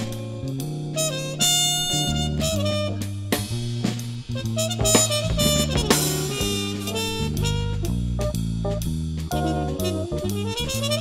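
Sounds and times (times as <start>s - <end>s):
jazz fusion band playing: 0.0s - 11.0s
drum hits: 3.5s - 8.4s.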